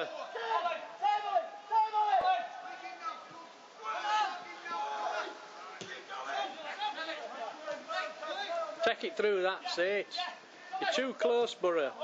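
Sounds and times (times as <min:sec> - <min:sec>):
men shouting: 0:00.0 - 0:11.3.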